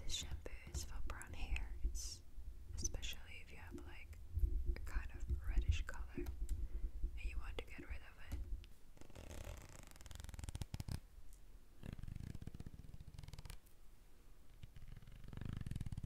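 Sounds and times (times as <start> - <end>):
woman whispering: 0.0 - 2.2, 2.8 - 4.2, 4.8 - 6.3, 7.2 - 8.4.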